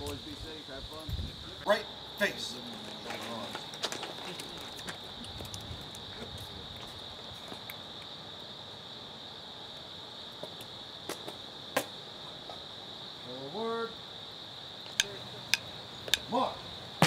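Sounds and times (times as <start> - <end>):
high-pitched insect chorus: 0.0 - 17.0
sharp clicks and knocks: 14.9 - 16.3.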